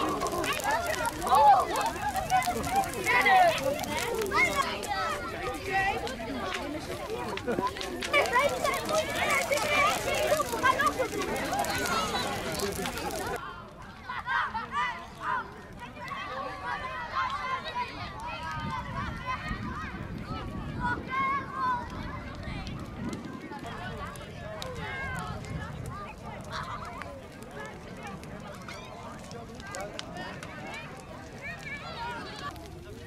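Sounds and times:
children calling and chattering: 0:00.0 - 0:33.0.

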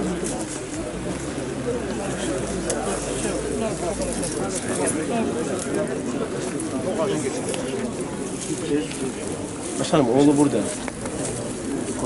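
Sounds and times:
murmur of men's voices: 0:00.0 - 0:12.0.

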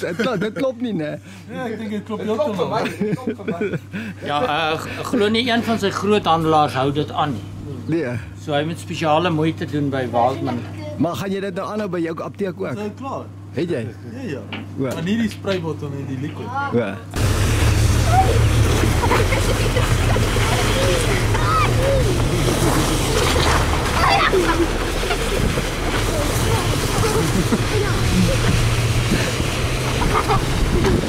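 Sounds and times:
vehicle rumble: 0:17.2 - 0:31.0
children shouting: 0:17.9 - 0:25.3
wind on microphone: 0:24.6 - 0:31.0.

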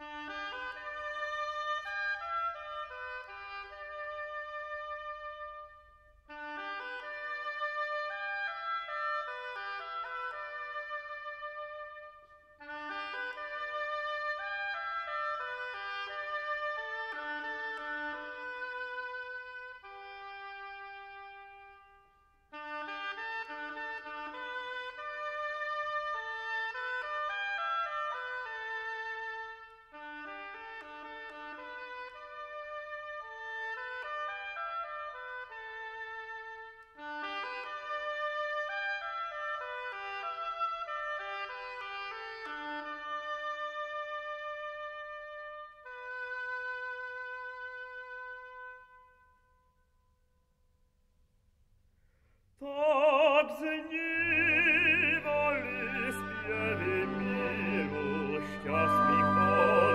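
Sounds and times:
orchestral music: 0:53.4 - 0:59.9.

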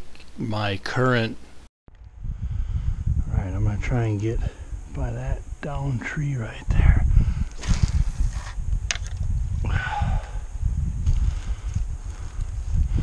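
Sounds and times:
low microphone rumble: 0:01.9 - 0:13.0.

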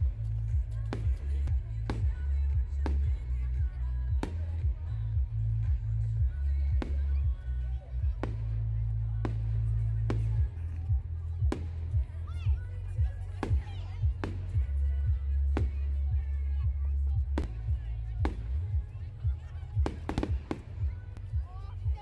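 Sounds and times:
music: 0:00.0 - 0:22.0
people's voices: 0:00.0 - 0:22.0
fireworks banging: 0:19.7 - 0:21.2.

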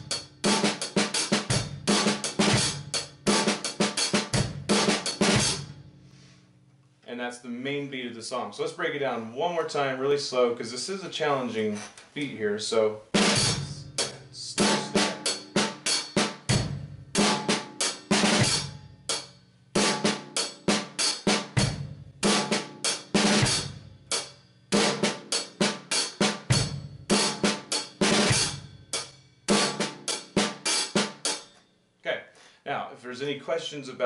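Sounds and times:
drum kit rock groove: 0:00.0 - 0:05.8, 0:13.1 - 0:31.6.

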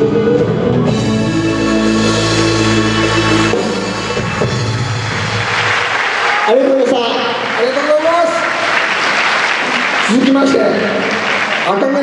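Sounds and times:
audience applauding: 0:03.2 - 0:12.0.

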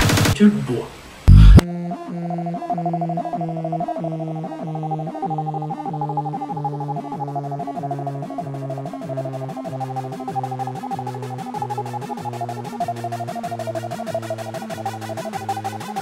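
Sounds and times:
fast even ticking: 0:01.3 - 0:01.6, 0:02.8 - 0:16.0
pulsing held synth tones: 0:01.3 - 0:16.0.

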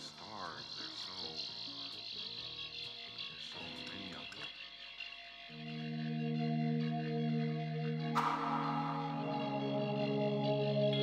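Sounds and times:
soft held low synth notes: 0:05.6 - 0:11.0
high-pitched electronic shimmer: 0:08.2 - 0:11.0.

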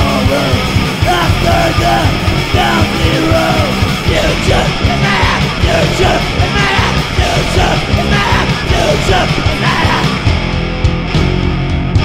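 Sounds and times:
shouted vocals: 0:00.0 - 0:10.3
punk metal band playing: 0:00.0 - 0:12.0.

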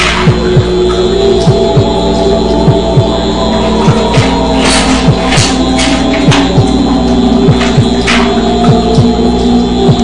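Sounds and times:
low droning hum: 0:00.0 - 0:10.0
heartbeat-like double thumps: 0:01.5 - 0:02.0, 0:02.7 - 0:03.2, 0:05.1 - 0:06.8, 0:07.4 - 0:08.0.

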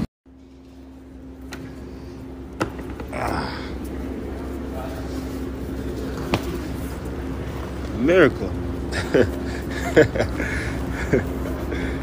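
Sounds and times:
low indoor hum: 0:00.0 - 0:12.0.

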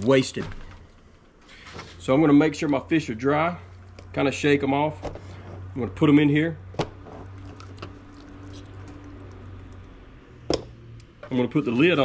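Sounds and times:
wet fish squishing in batter: 0:07.3 - 0:10.2.

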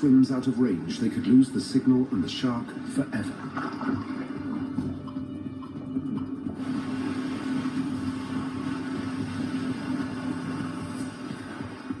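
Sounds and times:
low drone: 0:02.1 - 0:12.0
rushing noise: 0:06.5 - 0:12.0.

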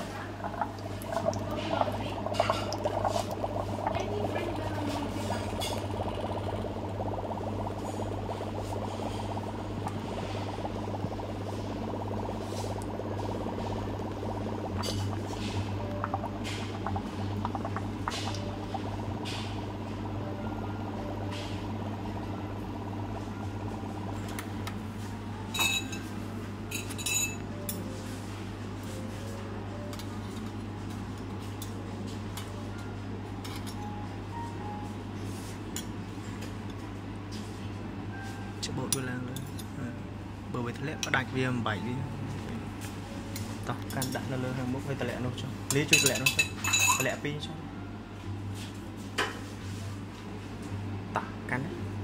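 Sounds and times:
steady low hum: 0:00.0 - 0:52.0
foam crackling and popping: 0:00.3 - 0:20.1.

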